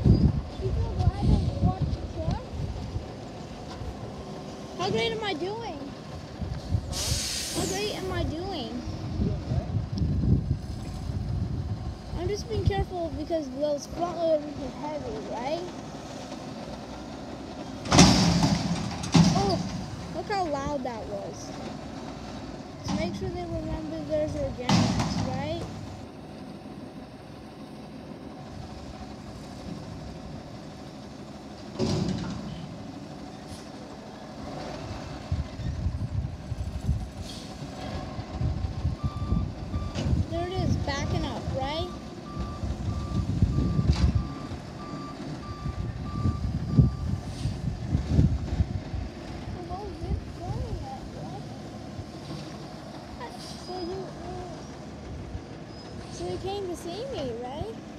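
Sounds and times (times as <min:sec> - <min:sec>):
wind buffeting microphone: 0:00.0 - 0:03.2, 0:07.8 - 0:13.5, 0:35.2 - 0:37.2, 0:37.9 - 0:51.2
garbage truck engine rumble: 0:00.0 - 0:57.9.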